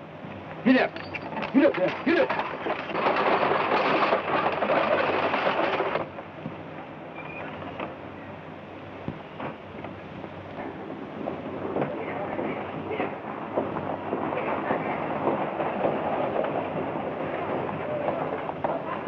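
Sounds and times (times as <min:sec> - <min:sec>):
hooves and wheels clattering: 0:00.3 - 0:08.1, 0:09.1 - 0:19.0
scattered knocks: 0:00.9 - 0:06.6.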